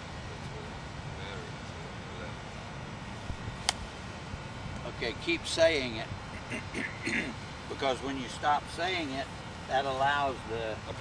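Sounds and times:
golf club striking ball: 3.6 - 3.9.

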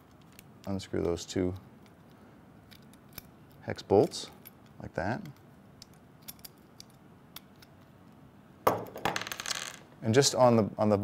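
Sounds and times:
small metal clicks: 0.0 - 8.2
metal parts clattering on wooden table: 8.7 - 9.8.

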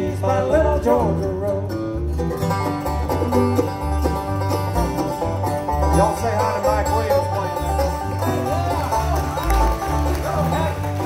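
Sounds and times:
bluegrass band playing: 0.0 - 11.0.

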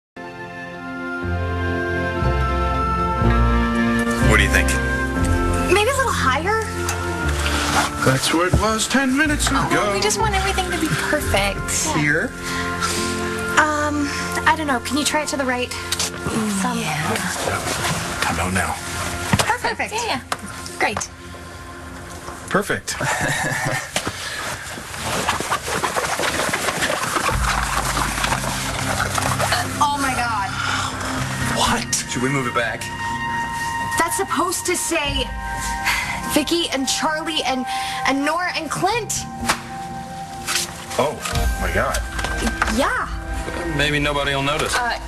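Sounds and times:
low held chord: 0.2 - 22.5
background music sustained tones: 0.2 - 45.0
dramatic television score: 0.8 - 45.0
person speaking: 11.8 - 12.2.

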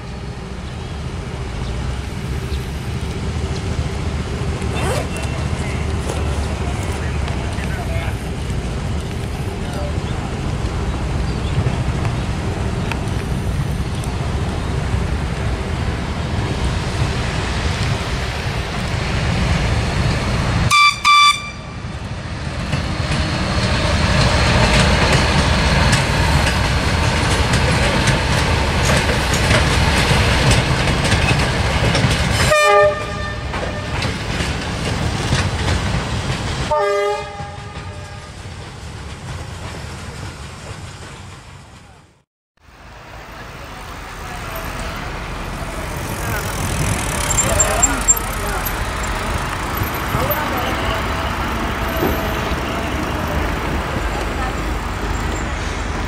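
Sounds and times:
train rumbling along rails: 0.0 - 56.0
train horn toots: 20.7 - 21.8, 32.4 - 34.0, 36.7 - 38.4.

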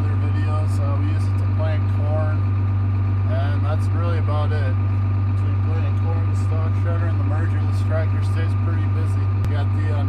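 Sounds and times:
man talking: 0.0 - 2.4, 3.3 - 10.0
tractor diesel engine idling: 0.0 - 10.0.

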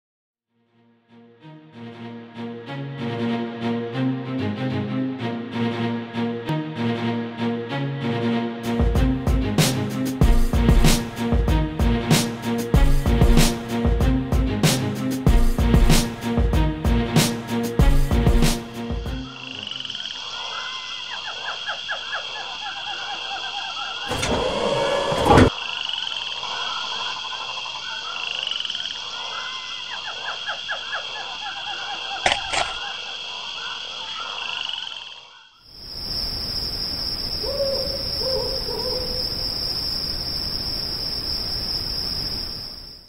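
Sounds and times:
backing music with drums and bass: 8.8 - 19.2
frog chorus: 19.2 - 24.1, 25.5 - 43.0
high insect-like trill: 35.7 - 43.0.

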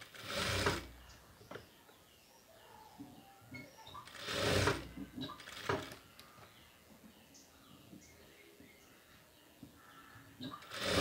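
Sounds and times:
sewing machine stitching: 0.0 - 1.1, 4.0 - 6.0, 10.5 - 11.0.

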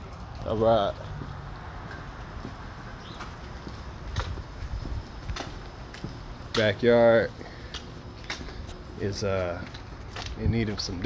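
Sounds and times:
footsteps on concrete: 0.0 - 11.0.

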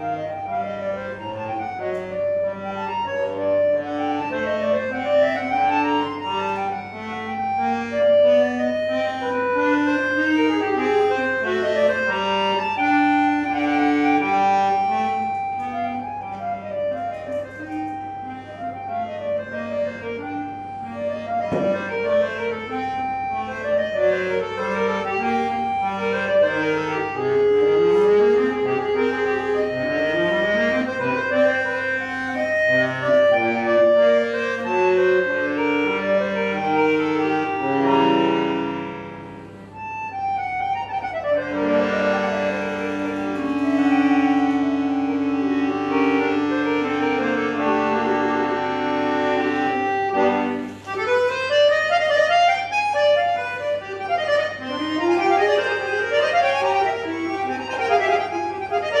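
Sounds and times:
button accordion solo: 0.0 - 59.0.

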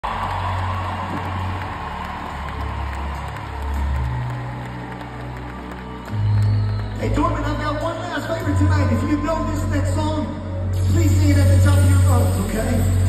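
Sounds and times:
crowd noise: 0.0 - 13.0
deep bass music: 0.0 - 13.0.

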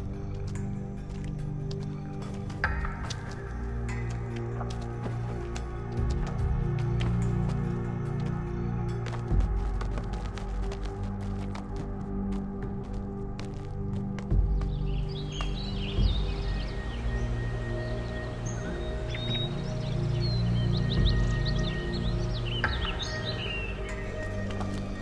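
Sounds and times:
birds chirping: 0.0 - 25.0
film score low tones: 0.0 - 25.0.

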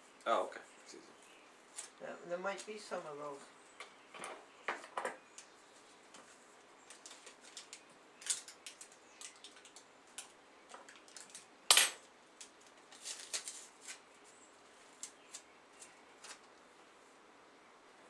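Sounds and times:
paper rustling: 6.1 - 10.2, 12.5 - 16.6
packaging crackle: 6.8 - 11.5, 12.4 - 14.0.

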